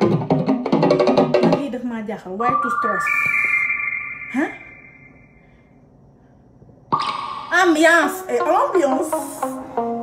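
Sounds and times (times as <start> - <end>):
electronic chime rising notes: 2.4 - 5.4.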